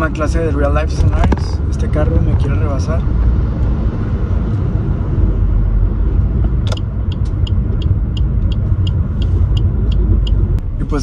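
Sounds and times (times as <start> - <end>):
car engine and road rumble: 0.0 - 11.0
light regular ticking: 6.7 - 10.6.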